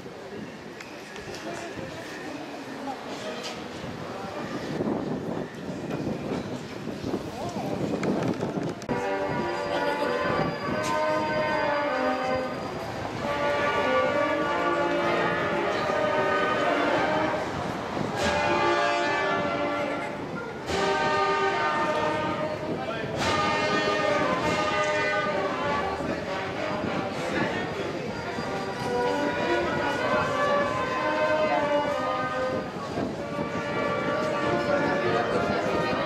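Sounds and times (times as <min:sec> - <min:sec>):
crowd murmur: 0:00.0 - 0:36.0
brass band playing slow chords: 0:08.9 - 0:27.3, 0:28.6 - 0:36.0.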